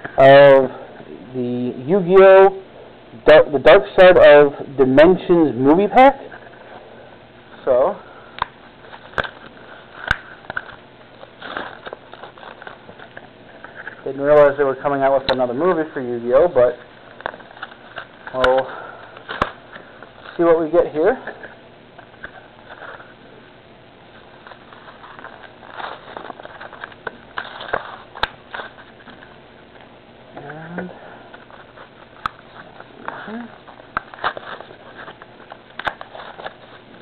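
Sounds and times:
plastic packaging rustling: 8.6s - 14.5s, 24.1s - 29.4s, 31.3s - 37.0s
foil wrapper crinkling and tearing: 8.8s - 14.0s, 24.2s - 29.4s, 31.3s - 37.0s.

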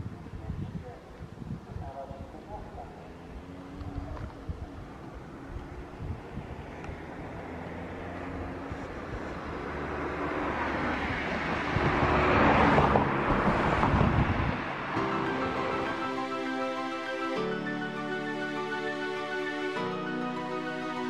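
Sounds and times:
wind rumble on microphone: 0.0s - 7.5s, 8.6s - 15.0s
road vehicle passing close: 2.3s - 21.0s.

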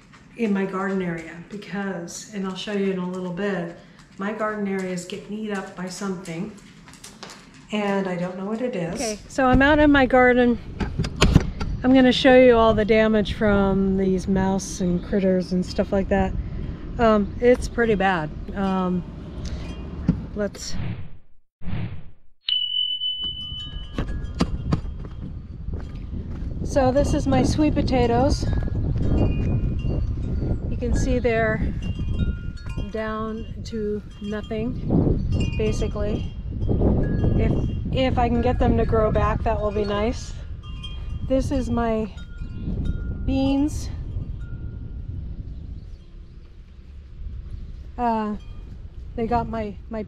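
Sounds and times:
wind buffeting microphone: 7.8s - 20.6s, 23.4s - 50.0s
bright bell-like ding: 22.5s - 24.8s.

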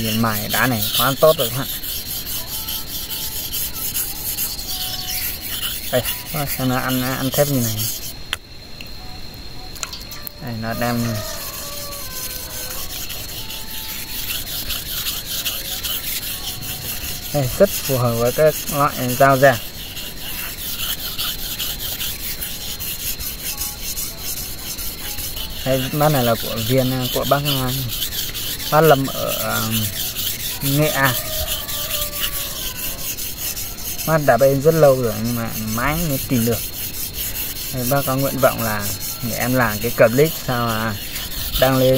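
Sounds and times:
knife rubbing on sharpening stone: 0.0s - 8.2s, 10.7s - 41.9s.

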